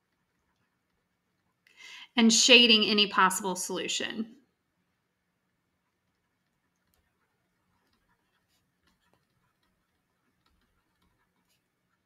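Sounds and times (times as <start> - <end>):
stylus tapping a tablet screen: 6.1 - 12.0.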